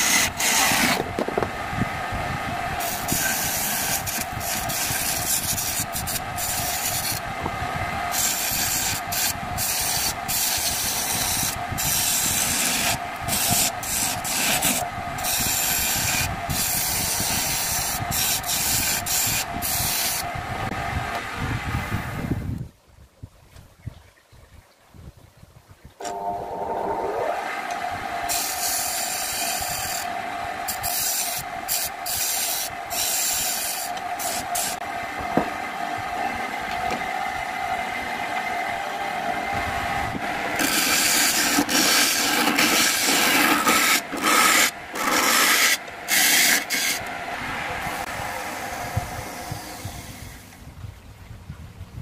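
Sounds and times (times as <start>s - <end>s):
turning tool scraping wood: 0.0s - 1.4s, 2.8s - 7.2s, 8.1s - 20.2s, 30.7s - 34.8s, 40.6s - 47.1s
lathe motor whine: 0.0s - 22.3s, 26.0s - 50.6s.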